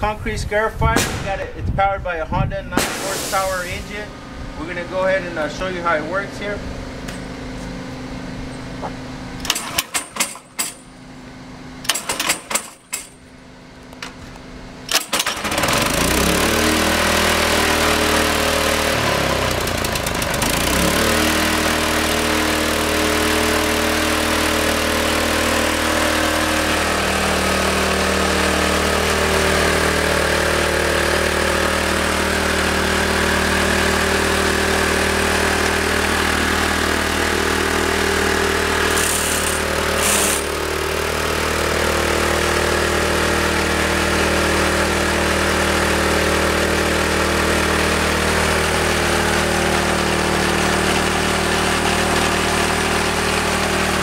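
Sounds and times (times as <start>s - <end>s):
engine running: 0.0s - 54.0s
engine pull-start: 9.4s - 10.9s, 11.8s - 13.2s, 14.8s - 16.7s, 38.9s - 40.7s
cutter drum grinding concrete: 14.9s - 54.0s.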